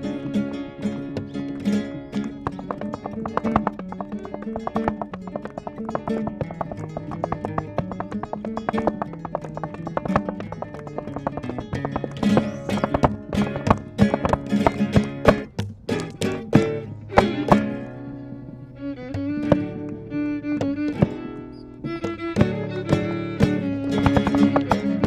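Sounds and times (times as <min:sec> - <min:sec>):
violin and acoustic guitar music: 0:00.0 - 0:25.0
heeled shoes striking a board: 0:01.1 - 0:18.1, 0:19.0 - 0:25.0.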